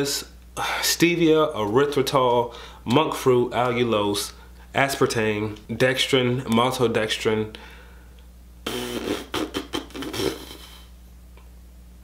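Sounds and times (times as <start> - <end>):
low electrical hum: 0.0 - 12.0
man murmuring wordlessly: 8.7 - 10.9.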